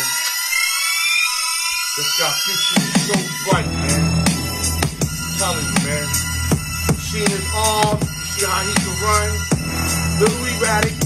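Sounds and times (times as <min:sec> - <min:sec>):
rising synth riser tone: 0:03.5 - 0:10.9.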